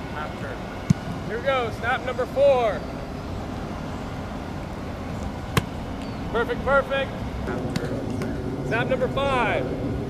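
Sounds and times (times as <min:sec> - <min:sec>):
steady background hum: 0:00.0 - 0:10.0
football smacking into hands: 0:05.5 - 0:05.8.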